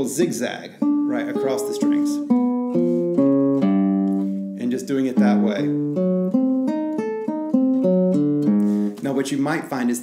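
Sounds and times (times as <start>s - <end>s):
classical guitar plucked notes: 0.2s - 9.1s.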